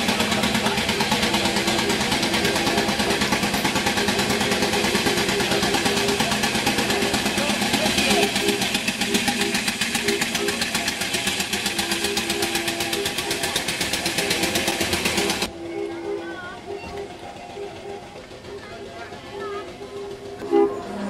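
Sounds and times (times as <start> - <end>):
car engine running: 0.0 - 21.0.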